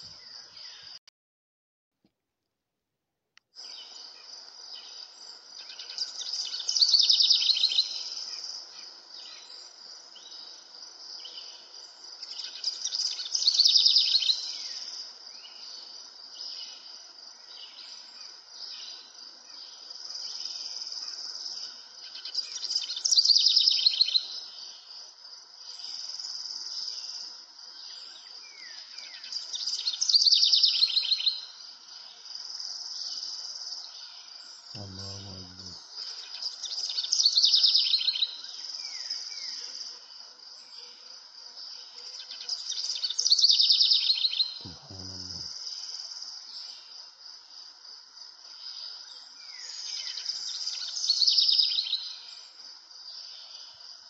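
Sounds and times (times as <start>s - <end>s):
birdsong: 3.6s - 25.0s, 25.6s - 41.0s, 41.6s - 46.9s
insects chirring: 3.6s - 54.0s.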